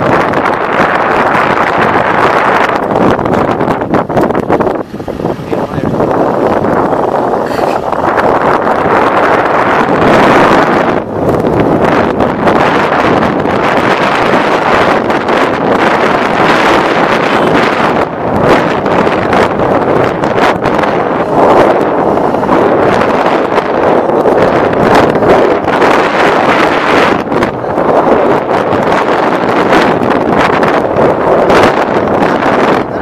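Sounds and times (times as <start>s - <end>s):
vehicle noise: 0.0s - 33.0s
wind rushing over microphone: 0.0s - 33.0s.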